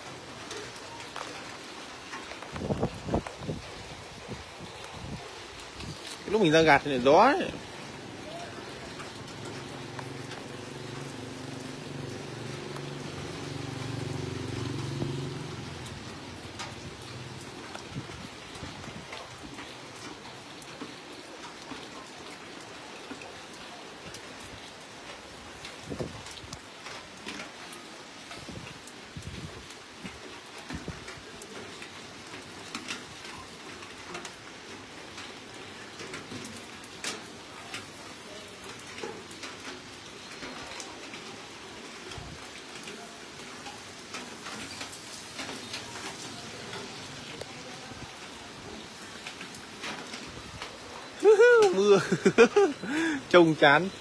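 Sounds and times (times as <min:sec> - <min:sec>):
rain pattering: 0:00.0 - 0:54.0.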